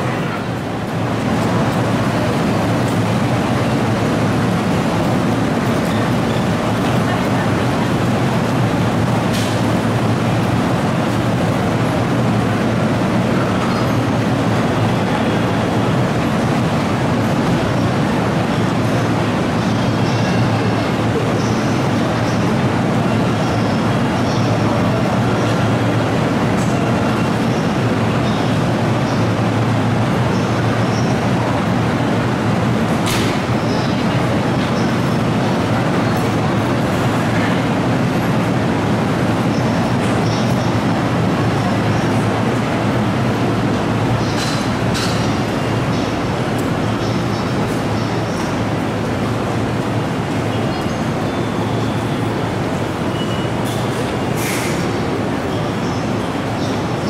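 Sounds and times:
electric train equipment humming: 0.0s - 57.0s
station noise: 0.0s - 57.0s.

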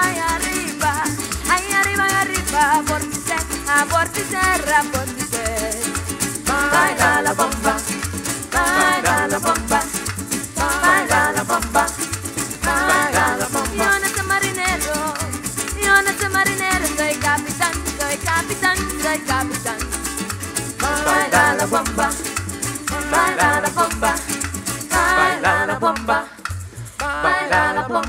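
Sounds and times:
maracas shaking: 0.0s - 28.0s
strummed string instruments: 0.0s - 28.0s.

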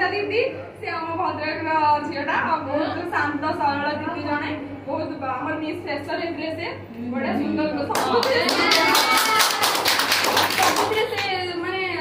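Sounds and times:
small audience clapping: 7.9s - 11.5s.

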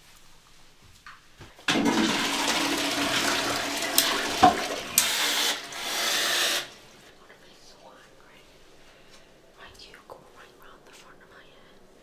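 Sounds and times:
toilet flushing water rush: 1.7s - 7.1s.

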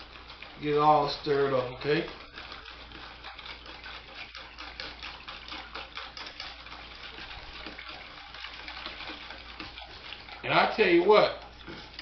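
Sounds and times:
liquid sloshing in a bowl: 0.0s - 12.0s
whisk ticking against metal: 0.0s - 12.0s.

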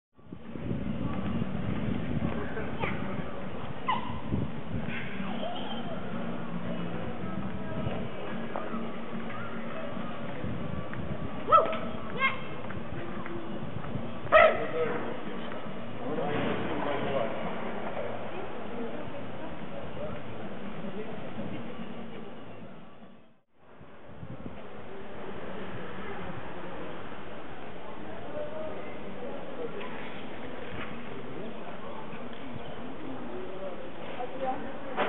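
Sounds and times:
outdoor background murmur: 0.1s - 35.0s
steady street hum: 0.1s - 35.0s
dog barking: 3.9s - 4.2s, 11.5s - 11.8s, 14.3s - 14.8s.

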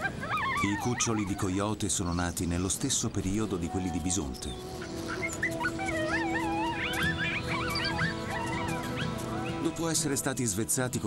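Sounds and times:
coyote pups whining: 0.0s - 2.4s, 4.4s - 9.7s
background music with held notes: 2.6s - 11.0s.

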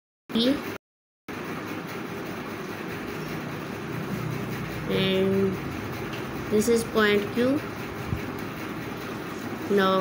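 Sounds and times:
steady rumbling noise: 1.6s - 10.0s.

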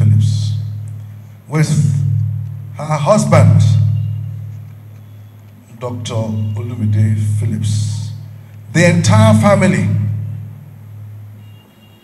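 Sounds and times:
public-address system hum: 0.0s - 12.0s
amplified man's voice: 1.5s - 4.1s, 5.7s - 10.3s.

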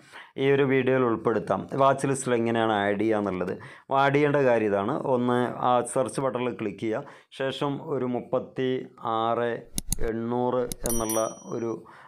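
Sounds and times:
man talking: 0.4s - 12.0s
high ringing chime: 10.8s - 11.8s.

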